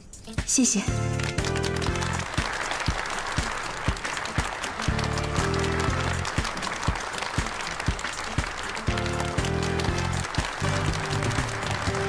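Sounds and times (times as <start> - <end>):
background music with steady beat: 0.0 - 12.0
audience applauding: 1.0 - 12.0.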